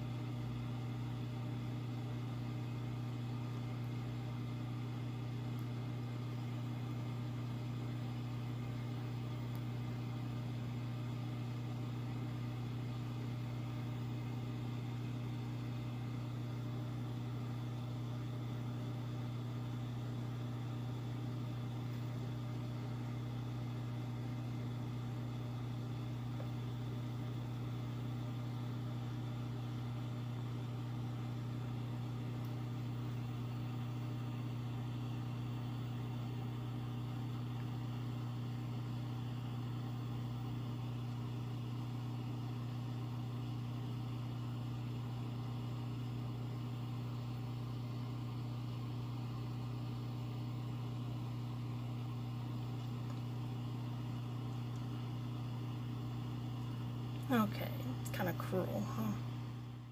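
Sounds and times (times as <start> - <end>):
low machine hum: 0.0 - 59.9.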